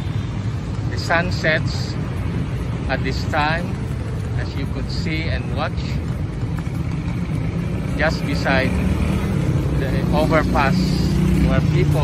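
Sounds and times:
cars passing on road: 0.0s - 12.0s.

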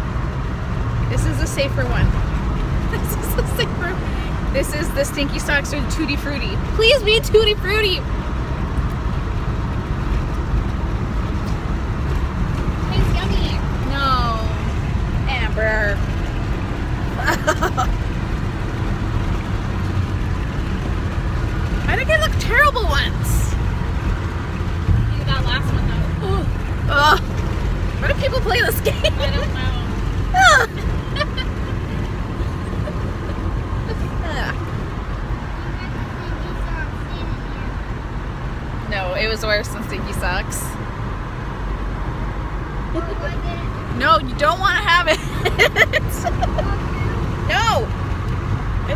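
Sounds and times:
road and engine rumble in car: 0.0s - 48.9s.

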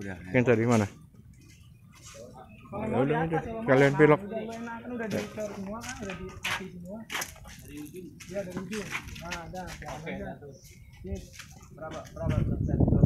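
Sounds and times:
people talking in background: 0.0s - 13.0s.

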